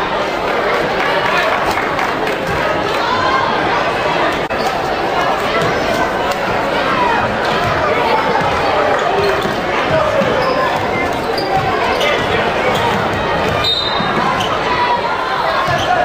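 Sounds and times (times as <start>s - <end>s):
crowd and players chattering: 0.0s - 16.0s
ball bouncing on hardwood court: 9.2s - 14.3s.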